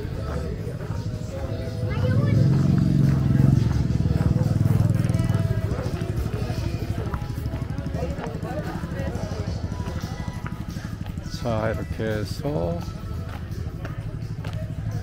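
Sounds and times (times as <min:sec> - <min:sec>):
motorbike engine: 0:00.0 - 0:15.0
people talking: 0:00.0 - 0:15.0.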